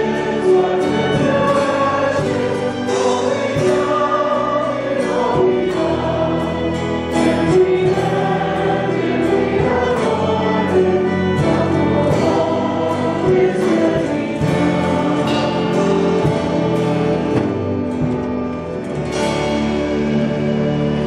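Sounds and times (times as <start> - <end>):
congregation singing a hymn: 0.0 - 21.0.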